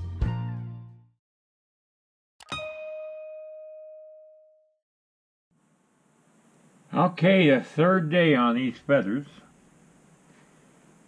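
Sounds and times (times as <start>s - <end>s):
notification bell chime: 2.4s - 4.5s
faint room hiss: 5.6s - 11.0s.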